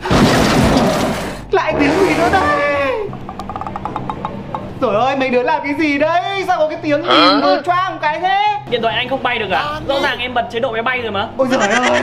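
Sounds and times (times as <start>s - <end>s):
soft background music: 1.6s - 12.0s.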